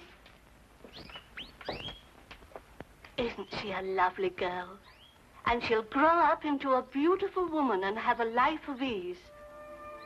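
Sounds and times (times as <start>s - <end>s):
pet birds chirping: 0.8s - 2.1s, 4.8s - 5.2s.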